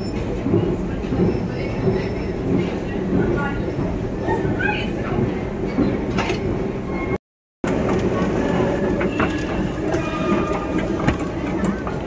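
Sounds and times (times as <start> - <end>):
echoing station hall noise: 0.0 - 12.0.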